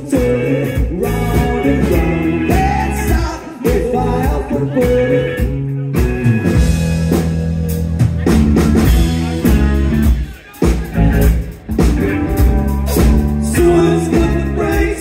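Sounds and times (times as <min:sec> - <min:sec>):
live rock band playing loudly: 0:00.0 - 0:15.0.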